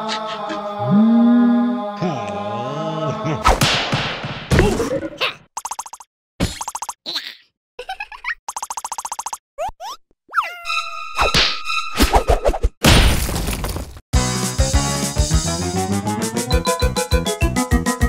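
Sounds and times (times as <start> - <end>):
drawn-out pitched vocal note: 0.0 - 3.4
loud cartoon hits: 3.5 - 4.8, 12.8 - 13.9.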